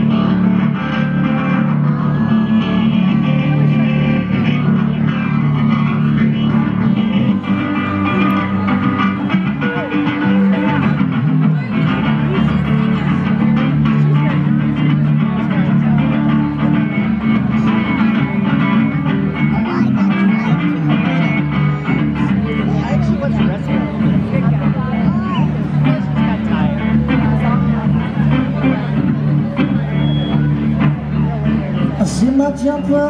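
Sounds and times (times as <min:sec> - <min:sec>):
acoustic guitar blues accompaniment: 0:00.0 - 0:33.0.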